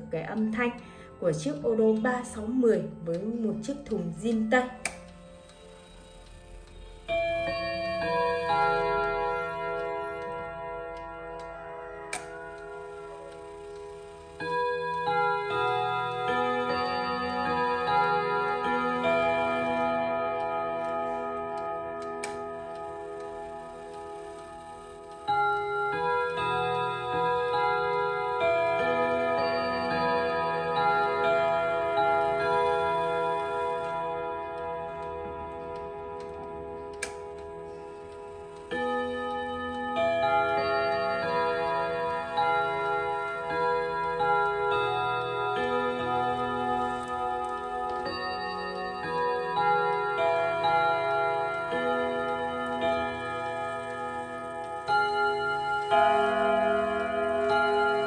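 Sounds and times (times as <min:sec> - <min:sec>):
clock chime tune on gong rods: 0:00.0 - 0:58.0
clock click: 0:00.2 - 0:58.0.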